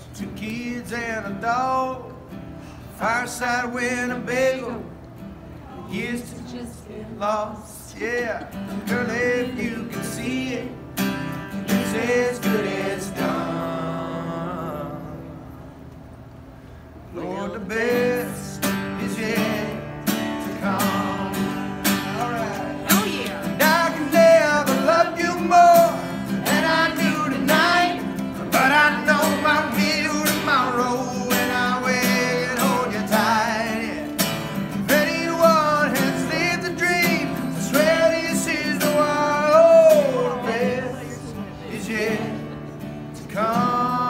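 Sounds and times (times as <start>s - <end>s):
man singing country song: 0.0s - 2.3s, 2.9s - 4.9s, 5.7s - 15.4s, 17.1s - 44.0s
strummed acoustic guitar: 0.0s - 15.8s, 17.3s - 44.0s.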